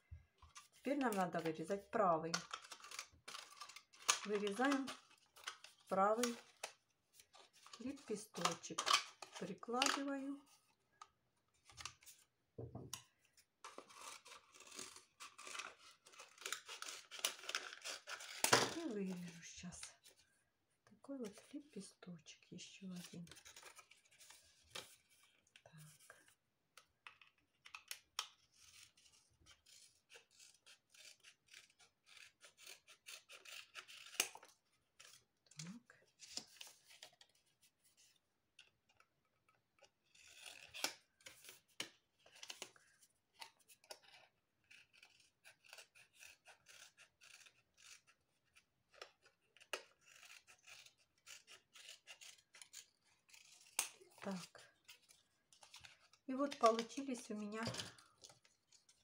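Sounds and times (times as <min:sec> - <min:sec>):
scissors snipping plastic: 0:00.5 - 0:10.3, 0:12.9 - 0:20.1, 0:26.7 - 0:37.2, 0:38.6 - 0:42.8, 0:43.4 - 0:59.0
scratchy rasping of plastic: 0:02.3 - 0:10.2, 0:13.6 - 0:20.2, 0:39.8 - 0:59.0.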